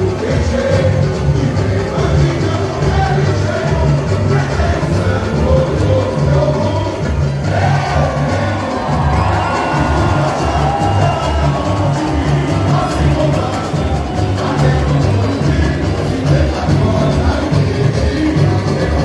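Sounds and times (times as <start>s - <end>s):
crowd cheering: 0.0s - 19.0s
samba drumming band: 0.0s - 19.0s.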